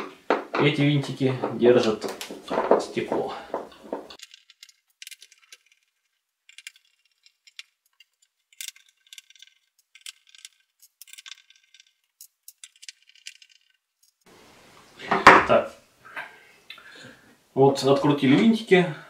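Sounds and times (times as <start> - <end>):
screws clinking: 1.8 - 14.3.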